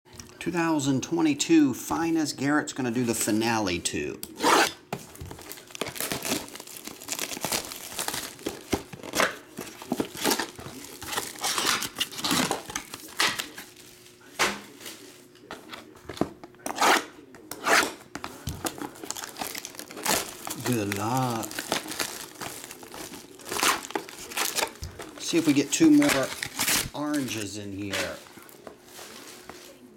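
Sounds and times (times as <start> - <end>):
plastic shrink wrap crinkling: 5.1 - 15.2, 18.4 - 29.9
cardboard boxes scraping: 27.2 - 29.8.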